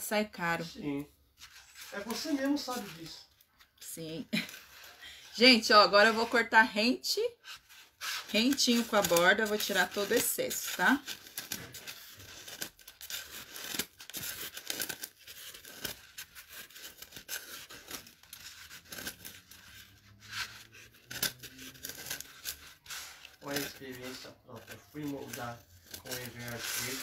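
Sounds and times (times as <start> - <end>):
scissors snipping foam: 7.4 - 23.7.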